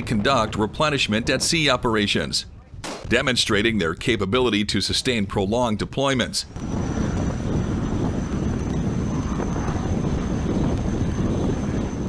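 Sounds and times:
wind: 0.0s - 12.0s
faint high whine: 6.5s - 12.0s
ship's machinery rumbling: 6.5s - 12.0s.

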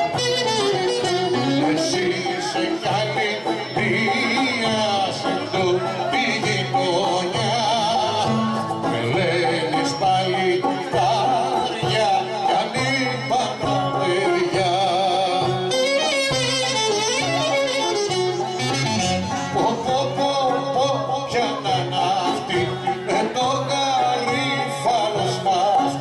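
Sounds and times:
ornamented violin melody: 0.0s - 7.0s, 11.3s - 21.0s
person singing: 0.0s - 26.0s.

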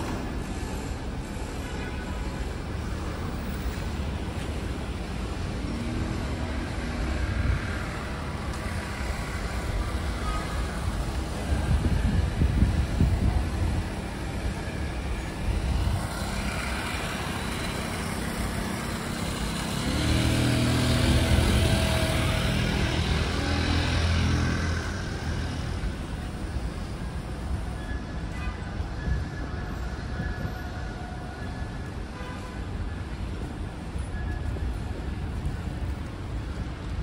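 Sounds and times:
cars passing: 0.0s - 27.7s
engine hum passing close: 3.8s - 26.2s.

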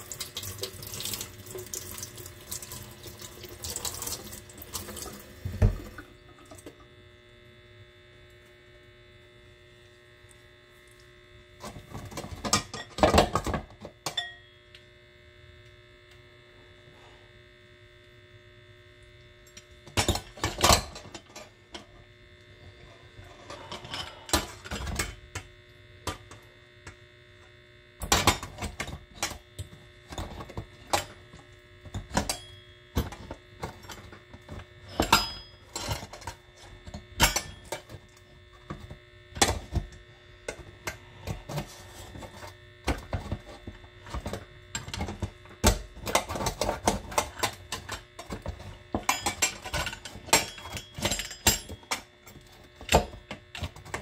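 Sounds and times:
faint hum: 0.0s - 54.0s.

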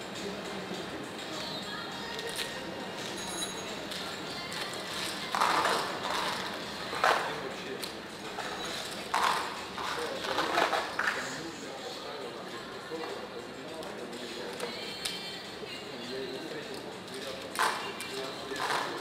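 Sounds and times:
faint background music: 0.0s - 19.0s
steady background hum: 0.0s - 19.0s.

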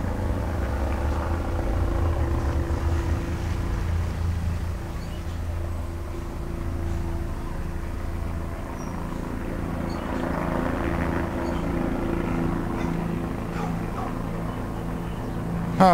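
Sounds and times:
low mechanical hum: 0.0s - 15.9s.

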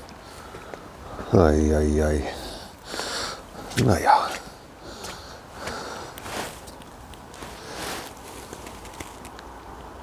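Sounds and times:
footsteps on forest path: 2.9s - 9.3s.

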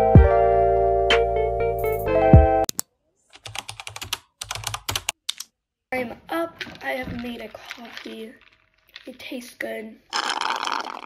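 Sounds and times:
person speaking: 5.9s - 11.0s.

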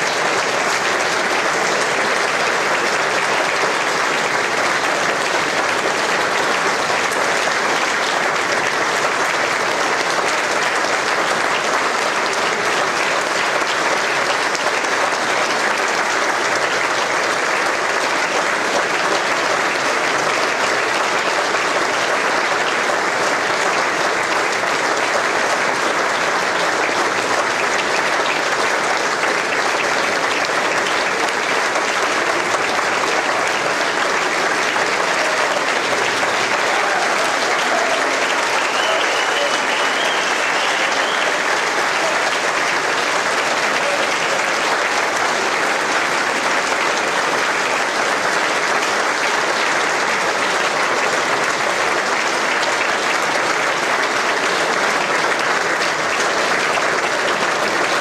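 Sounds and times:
audience applauding: 0.0s - 58.0s.

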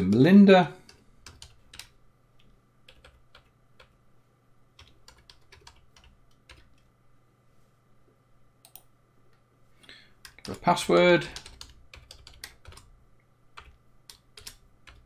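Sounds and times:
computer keyboard typing: 0.0s - 4.0s, 4.8s - 6.9s, 10.2s - 12.9s, 13.5s - 15.0s.

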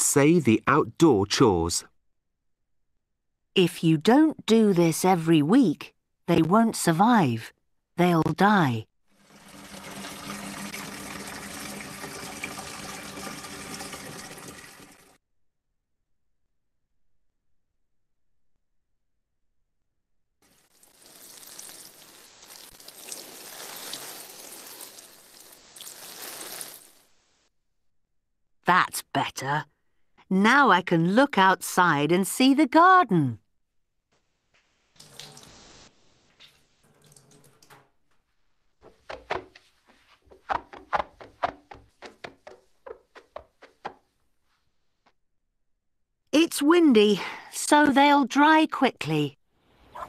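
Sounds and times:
running water: 9.1s - 15.2s, 20.4s - 27.1s, 34.9s - 37.9s
sharp knocks and taps: 38.8s - 44.1s.

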